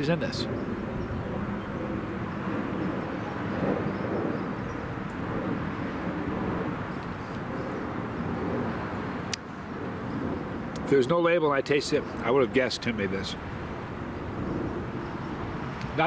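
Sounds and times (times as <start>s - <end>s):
distant engine drone: 0.0s - 16.0s
outdoor background noise: 0.0s - 16.0s.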